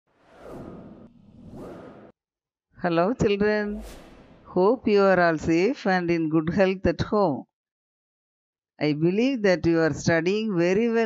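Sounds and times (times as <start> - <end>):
whoosh transition effects: 0.1 - 2.1, 3.5 - 4.7.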